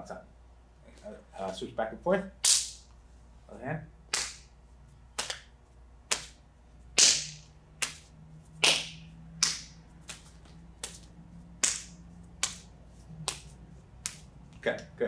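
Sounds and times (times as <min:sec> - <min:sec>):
palm slapping an arm: 0:04.1 - 0:14.3.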